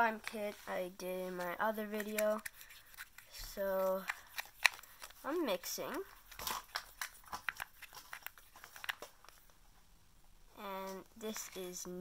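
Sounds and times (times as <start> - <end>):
stirring clicks and scrapes in plastic cup: 1.4 - 9.4.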